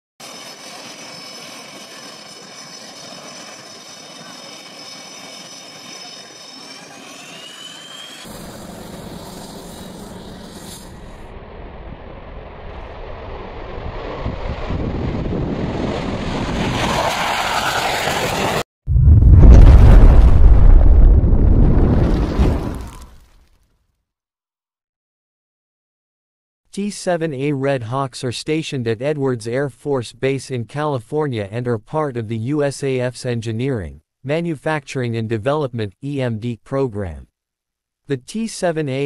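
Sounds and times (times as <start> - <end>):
jet turbine whine: 0.2 - 18.7
jet rumble: 6.6 - 23.0.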